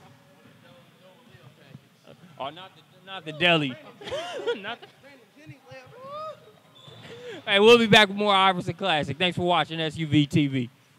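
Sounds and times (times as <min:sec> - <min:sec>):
men talking and laughing: 0:03.2 - 0:07.6.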